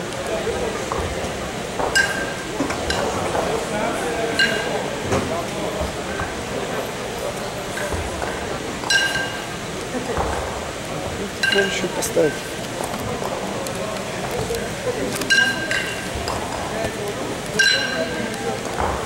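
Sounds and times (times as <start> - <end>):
murmur of voices: 0.0 - 19.0
kettlebells clinking together: 1.8 - 3.4, 4.3 - 4.8, 8.8 - 9.6, 11.4 - 12.4, 15.3 - 16.7, 17.5 - 18.5.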